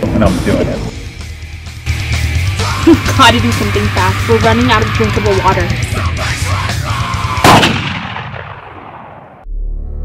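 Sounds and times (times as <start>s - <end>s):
loud gunshot with echo: 7.4s - 9.4s.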